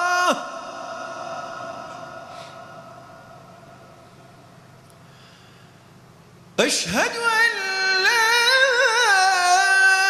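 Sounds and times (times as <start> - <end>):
call to prayer over loudspeakers: 0.0 - 3.9, 6.6 - 10.0
hall reverberation: 0.0 - 5.4.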